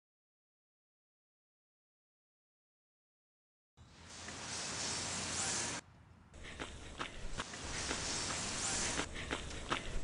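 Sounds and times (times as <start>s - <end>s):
steady hiss: 3.8s - 5.8s, 6.4s - 10.0s.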